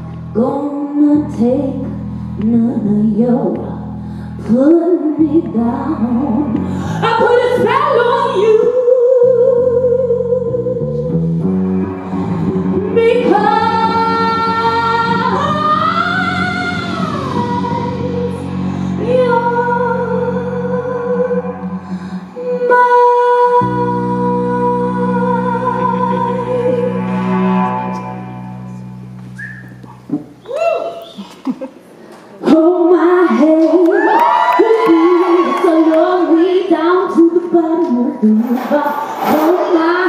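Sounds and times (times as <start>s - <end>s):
female vocal harmony singing: 4.4s - 10.8s, 12.9s - 27.3s, 32.4s - 40.0s
person whistling: 29.3s - 31.4s
person hooting woo: 29.4s - 29.8s, 30.4s - 31.4s, 33.9s - 36.0s.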